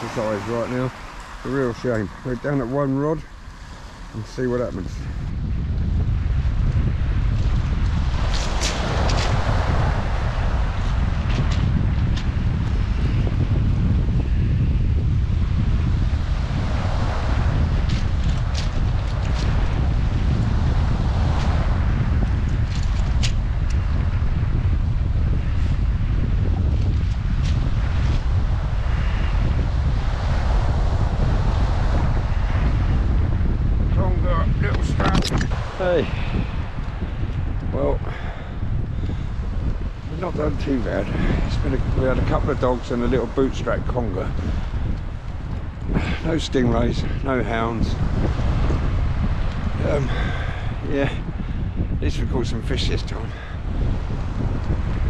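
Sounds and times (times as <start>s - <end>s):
waves on shingle beach: 0.0s - 4.6s
low rumble: 0.0s - 55.0s
wind buffeting microphone: 0.0s - 55.0s.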